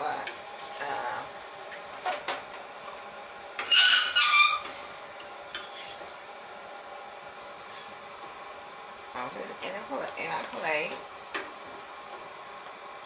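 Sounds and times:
frying pan squealing: 0:03.6 - 0:04.9.

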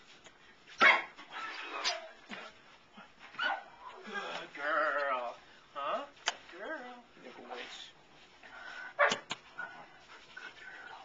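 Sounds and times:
puppy barking: 0:00.8 - 0:01.2, 0:03.4 - 0:03.8, 0:09.0 - 0:09.3.

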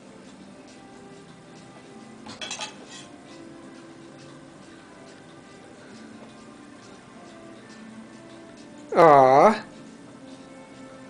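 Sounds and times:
quiet background music: 0:00.0 - 0:11.0
tableware clinking on a tray: 0:02.2 - 0:03.2.

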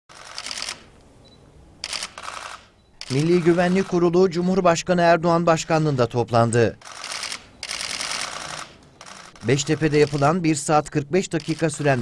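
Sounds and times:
camera shutters clicking in bursts: 0:00.1 - 0:01.0, 0:01.8 - 0:04.1, 0:06.8 - 0:10.5, 0:11.3 - 0:12.0.

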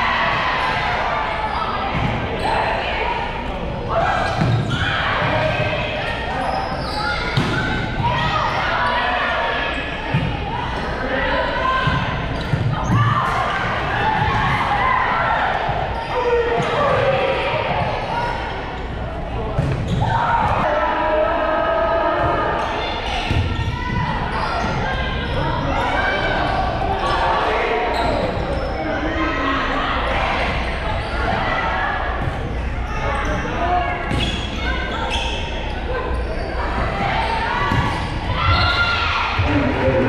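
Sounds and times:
people chattering and calling out: 0:00.0 - 0:40.0.

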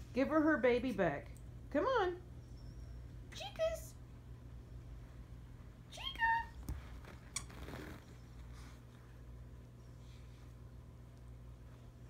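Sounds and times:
soft rustle on carpet: 0:06.6 - 0:09.3.

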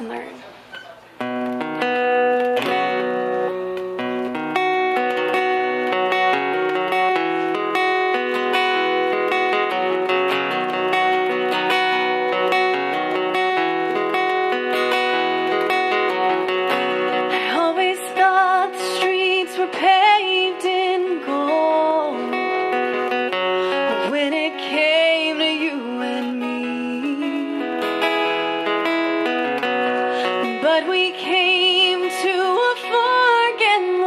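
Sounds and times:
acoustic guitar picking: 0:00.0 - 0:34.0
woman singing: 0:17.1 - 0:28.9, 0:29.6 - 0:34.0.

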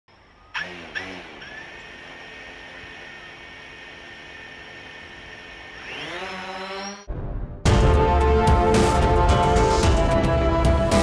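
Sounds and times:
small electric motor whining: 0:00.2 - 0:07.1.

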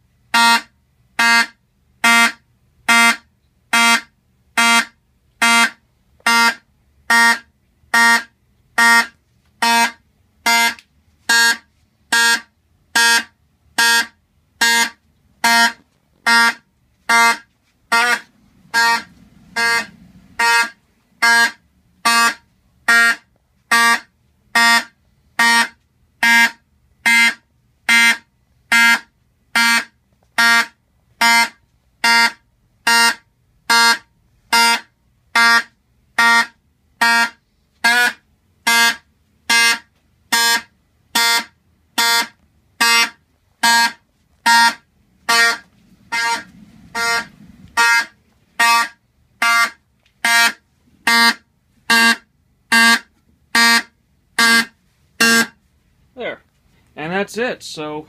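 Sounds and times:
horn buzzing in short pulses: 0:00.3 - 0:29.0, 0:29.6 - 0:55.6.

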